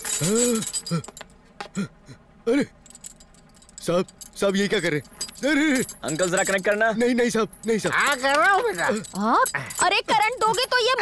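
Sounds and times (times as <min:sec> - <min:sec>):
metal chain clinking: 0:00.0 - 0:01.4, 0:02.8 - 0:11.0
man exclaiming: 0:00.2 - 0:01.0.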